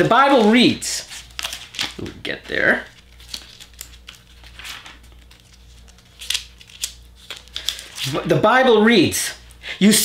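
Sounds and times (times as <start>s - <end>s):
book pages rustling: 0.0s - 8.2s.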